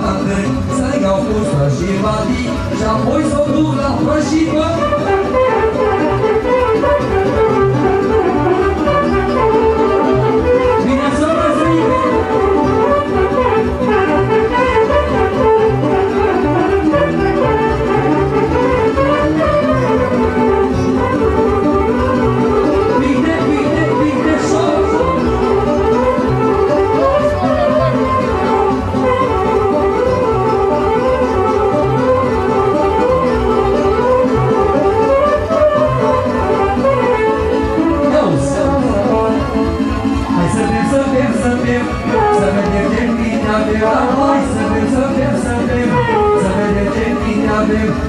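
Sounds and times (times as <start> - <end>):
folk band playing dance music: 0.0 - 48.0.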